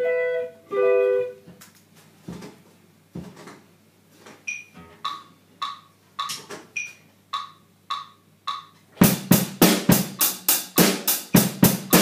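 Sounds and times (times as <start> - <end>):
drums: 1.2 - 12.0
metronome clicks ticking: 4.5 - 8.8.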